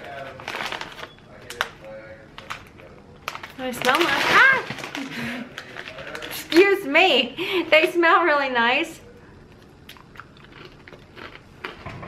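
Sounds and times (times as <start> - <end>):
chip bag rustling and crinkling: 0.0 - 6.8.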